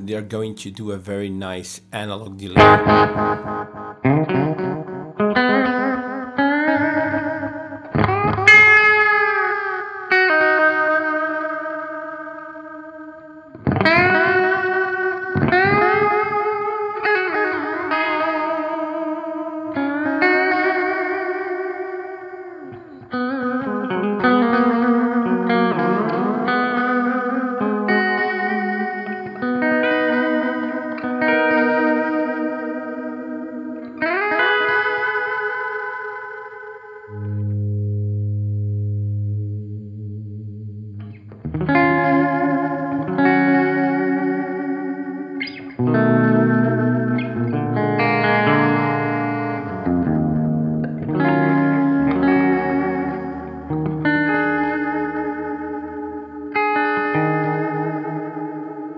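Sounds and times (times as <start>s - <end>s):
electric guitar with delay: 2.2s - 58.9s.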